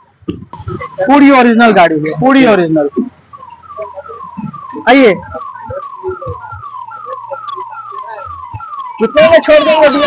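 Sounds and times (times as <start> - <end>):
electronic siren falling tone: 0.0 - 10.0.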